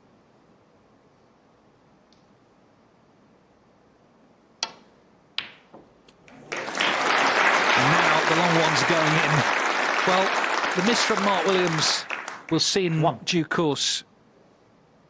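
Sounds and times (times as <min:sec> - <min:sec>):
cue striking ball click: 0:04.6 - 0:05.9
crowd applause: 0:06.3 - 0:12.6
man talking: 0:07.7 - 0:14.1.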